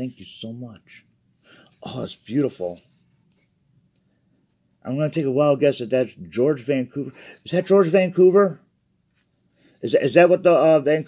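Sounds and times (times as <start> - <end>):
man speaking: 0.0 - 1.1, 1.8 - 2.8, 4.8 - 8.6, 9.8 - 11.0.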